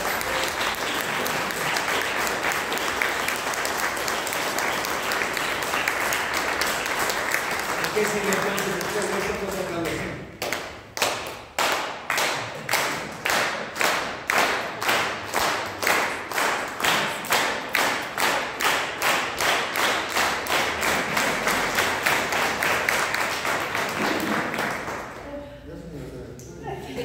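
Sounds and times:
audience applause: 0.0s - 25.2s
audience clapping in unison: 0.0s - 25.2s.

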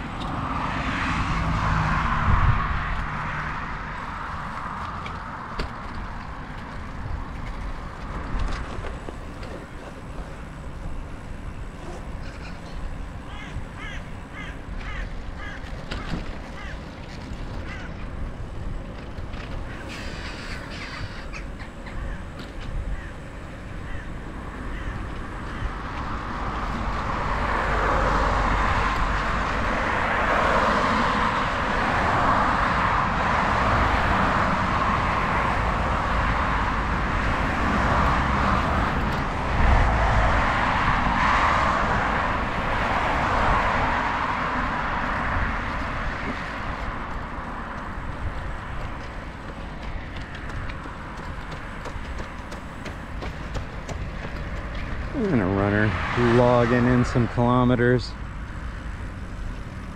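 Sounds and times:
bicycle tyre noise on pavement: 0.0s - 59.9s
road traffic passing: 0.0s - 59.9s
wind on microphone: 2.0s - 3.2s.

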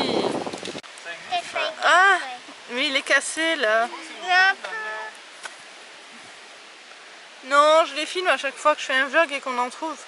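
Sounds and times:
steady background hiss: 0.2s - 10.0s.

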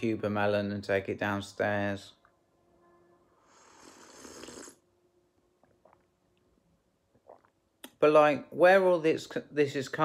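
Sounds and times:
person sipping a drink: 3.5s - 4.8s, 7.1s - 8.0s.

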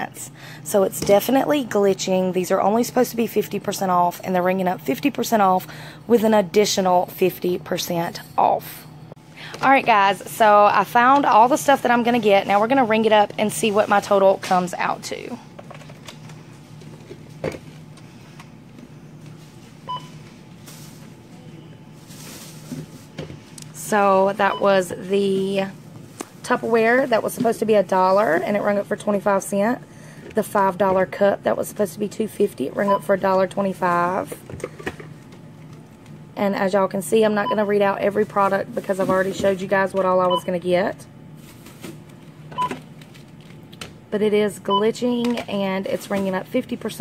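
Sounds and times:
low steady hum: 0.0s - 47.0s
barcode scanner beep: 19.9s - 20.2s, 32.8s - 33.1s, 40.2s - 40.6s, 44.7s - 45.0s.

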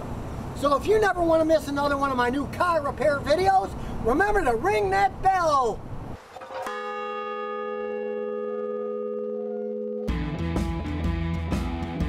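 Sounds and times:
large bell ringing: 6.5s - 10.2s.

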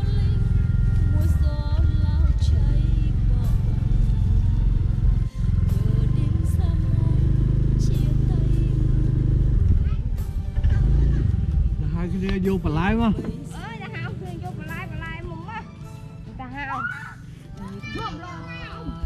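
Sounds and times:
motorbike engine at low speed: 0.0s - 15.6s
music playing: 0.0s - 19.0s.

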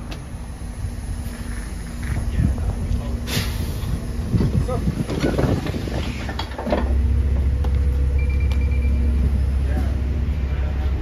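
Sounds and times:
bus engine drone: 0.0s - 11.0s
voices on a bus: 0.0s - 11.0s.

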